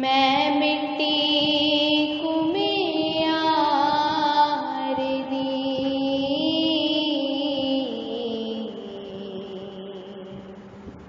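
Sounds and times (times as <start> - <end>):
person singing long held notes: 0.0 - 11.0.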